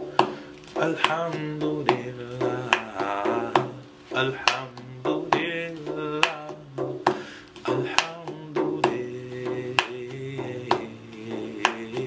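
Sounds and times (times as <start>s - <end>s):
hand drum slaps and taps: 0.0s - 12.0s.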